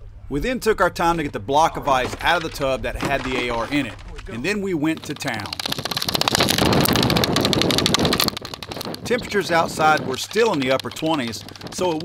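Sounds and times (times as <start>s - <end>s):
pick hammer chipping ice: 1.9s - 12.0s.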